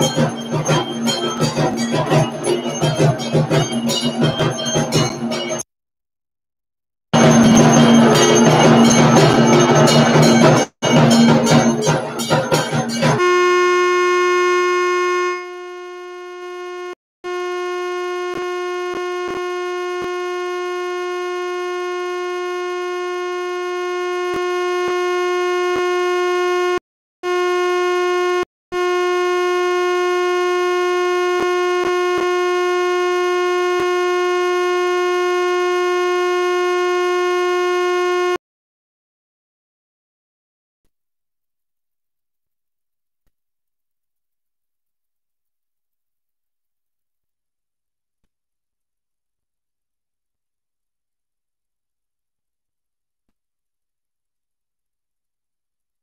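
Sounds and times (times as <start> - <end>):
music with bells and percussion: 0.0 - 5.6, 7.2 - 13.2
loud sustained tone: 7.2 - 16.9.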